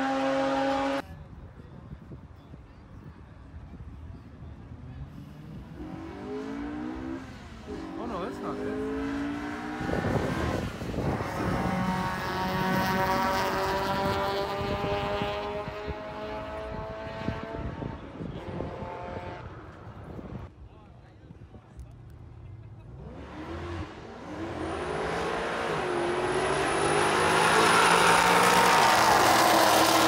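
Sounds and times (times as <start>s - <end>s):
car engines revving: 0.0s - 1.0s, 5.2s - 20.5s, 22.1s - 30.0s.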